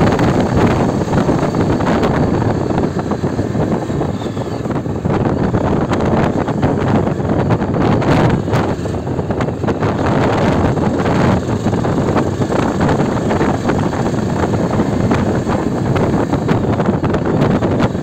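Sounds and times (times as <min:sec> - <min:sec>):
motorcycle engine running: 0:00.0 - 0:18.0
wind buffeting microphone: 0:00.0 - 0:18.0.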